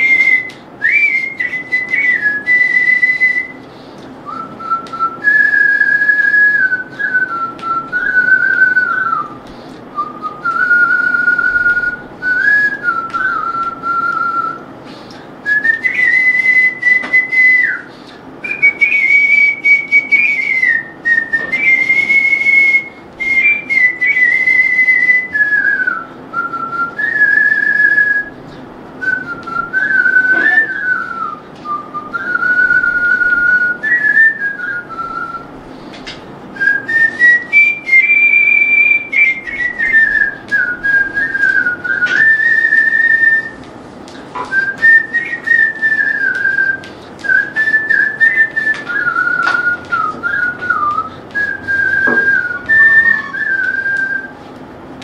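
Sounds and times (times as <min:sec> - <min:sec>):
person whistling a melody: 0:00.0 - 0:14.6, 0:15.4 - 0:28.4, 0:29.0 - 0:35.5, 0:36.6 - 0:43.6, 0:44.4 - 0:54.4.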